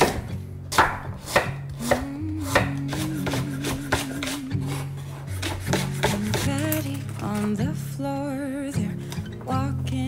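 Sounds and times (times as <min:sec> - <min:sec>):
knife chopping on wooden board: 0:00.0 - 0:06.5
soft background music: 0:00.0 - 0:10.0.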